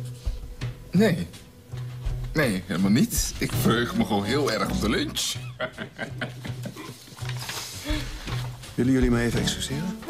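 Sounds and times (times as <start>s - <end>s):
soft background music: 0.0s - 10.0s
men sniggering: 5.3s - 8.3s.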